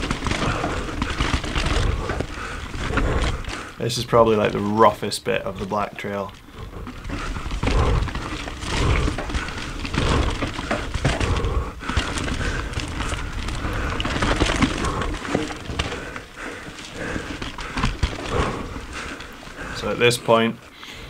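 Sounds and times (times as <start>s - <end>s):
bike knocking and rattling: 0.0s - 21.0s
tyres rumbling on rock: 0.0s - 21.0s.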